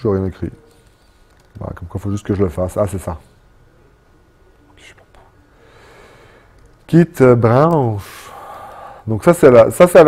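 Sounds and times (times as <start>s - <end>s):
low room hum: 0.0s - 10.0s
soft breathy sound: 4.7s - 6.6s, 8.0s - 9.1s.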